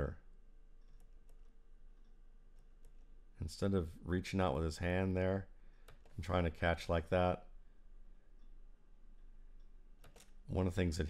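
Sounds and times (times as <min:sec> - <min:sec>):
faint steady hum: 0:00.0 - 0:11.0
computer mouse clicks: 0:00.8 - 0:03.1, 0:05.8 - 0:06.2, 0:09.6 - 0:10.4.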